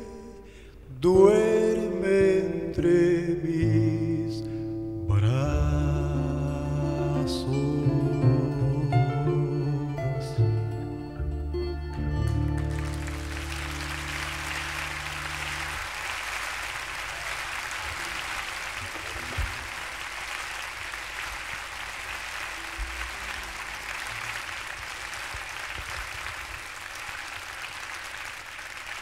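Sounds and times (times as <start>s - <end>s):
audience applause: 12.2s - 29.0s.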